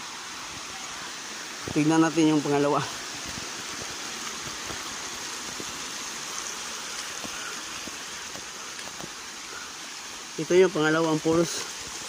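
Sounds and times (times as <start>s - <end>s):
water rushing over rocks: 0.0s - 12.0s.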